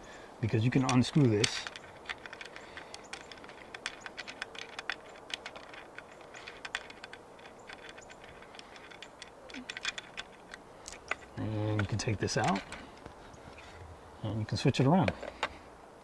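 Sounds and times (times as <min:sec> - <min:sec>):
light clicking and ticking: 0:00.0 - 0:13.4.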